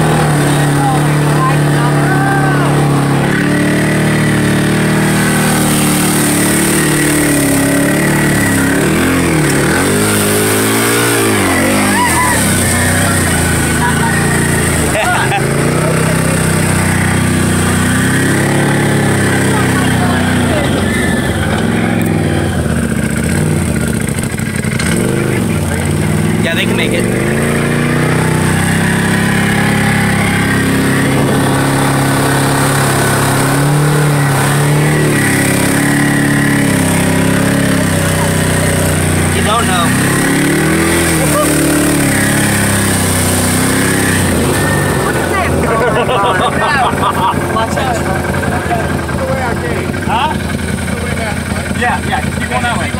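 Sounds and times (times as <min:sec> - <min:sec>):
off-road vehicle engine revving: 0:00.0 - 0:52.9.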